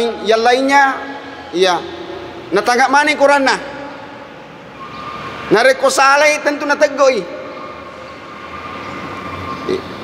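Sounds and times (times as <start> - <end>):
man speaking over loudspeaker: 0.0 - 4.1, 5.5 - 7.7, 9.6 - 10.0
steady background hum: 0.0 - 10.0.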